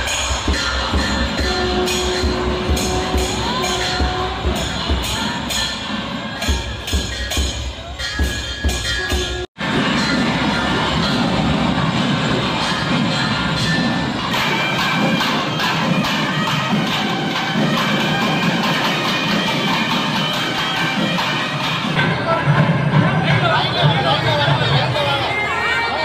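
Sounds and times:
drums beating: 0.0s - 25.8s
crowd cheering and shouting: 0.0s - 26.0s
brass horns: 1.4s - 5.3s.

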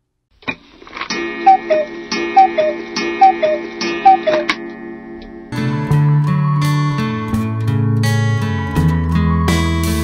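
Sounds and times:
sustained musical drone: 1.1s - 7.2s
sharp tick and two-note tone: 1.5s - 5.4s.

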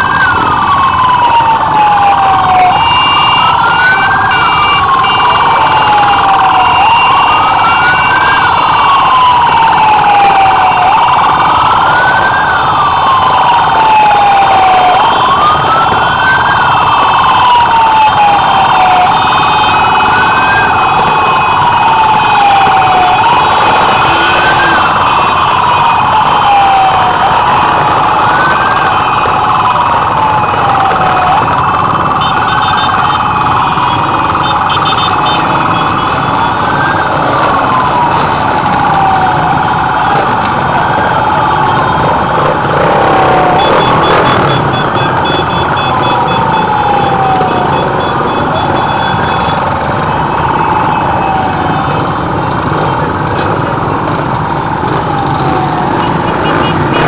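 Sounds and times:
siren wailing: 0.0s - 57.0s.

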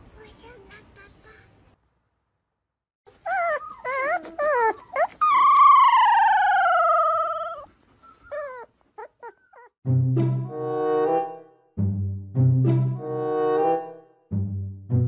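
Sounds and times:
dog howling and moaning: 3.3s - 7.7s.

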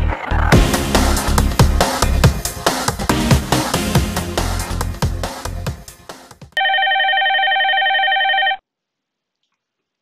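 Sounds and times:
electronic ringtone: 6.6s - 8.6s.

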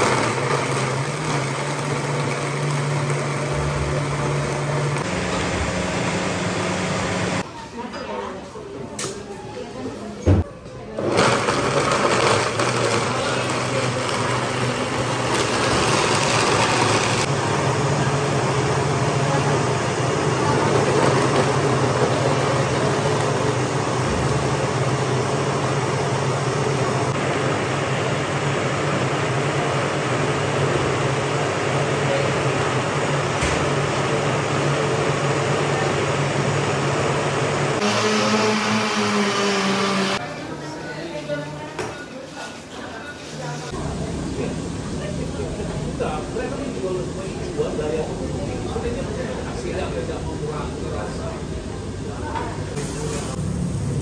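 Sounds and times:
blender motor whirring: 0.0s - 7.4s, 11.0s - 27.6s, 34.0s - 40.2s.

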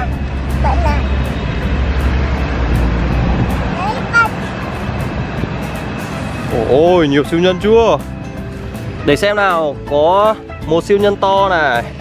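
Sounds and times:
wind noise on microphone: 0.0s - 9.4s
child's vocal sound: 3.7s - 4.7s.

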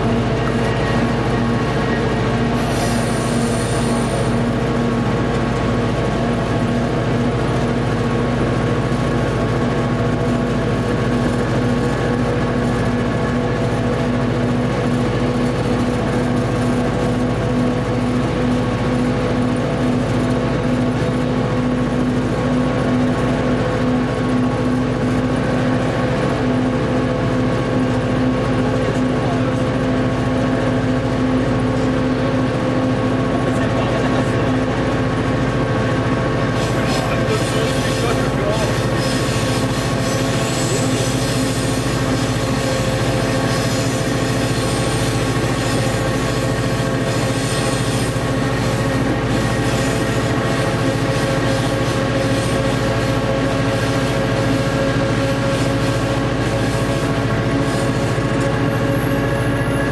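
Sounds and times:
diesel locomotive engine running: 0.0s - 59.9s
train rumbling over rails: 0.0s - 59.9s
brief high hiss: 2.6s - 4.4s.

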